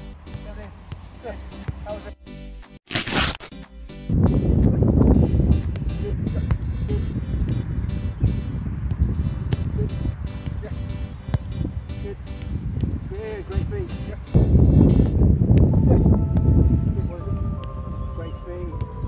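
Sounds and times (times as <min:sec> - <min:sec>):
background music: 0:00.0 - 0:19.0
wind noise on microphone: 0:04.1 - 0:19.0
football being kicked: 0:05.6 - 0:07.6, 0:08.2 - 0:13.0.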